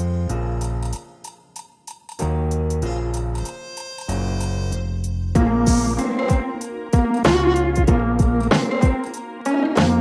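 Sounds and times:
hip-hop beat: 0.0s - 10.0s.

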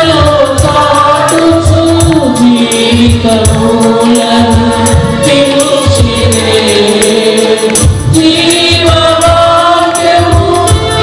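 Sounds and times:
choir singing: 0.0s - 11.0s
percussive beat and bass: 0.0s - 11.0s.

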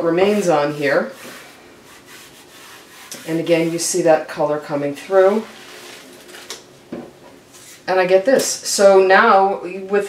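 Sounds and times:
hands rubbing paper: 0.2s - 4.0s.

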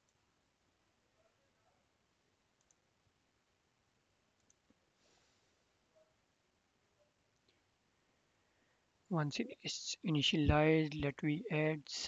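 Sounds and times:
computer mouse clicks: 2.6s - 2.8s, 4.4s - 4.7s.

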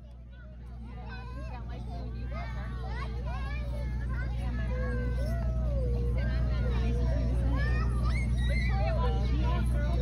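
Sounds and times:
chatter of voices: 0.0s - 10.0s.

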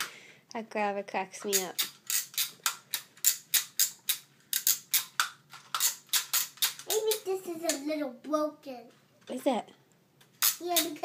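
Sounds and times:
toy grabber claw clicking: 1.5s - 7.8s, 10.4s - 11.0s.

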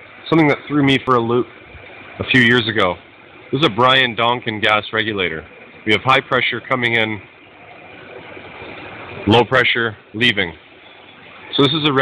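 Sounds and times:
equipment running noise: 0.0s - 12.0s.

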